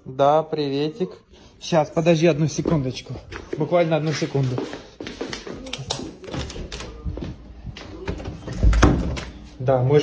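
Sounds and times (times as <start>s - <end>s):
footsteps: 2.0s - 9.5s.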